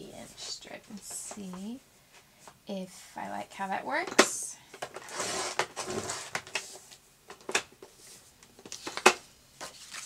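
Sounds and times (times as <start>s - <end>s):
paper sheet rustling: 8.0s - 10.0s.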